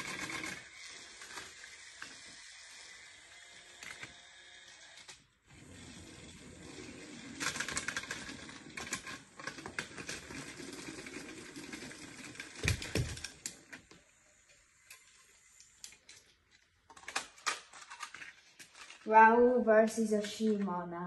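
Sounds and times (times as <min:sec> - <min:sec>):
plastic engines clicking: 0:00.0 - 0:05.2, 0:05.8 - 0:19.1
toy train clattering whir: 0:00.0 - 0:19.3.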